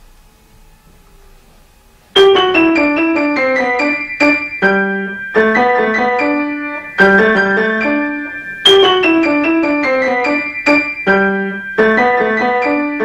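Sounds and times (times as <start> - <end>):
lively piano notes: 2.1 - 13.0
deep piano notes held: 2.2 - 13.0.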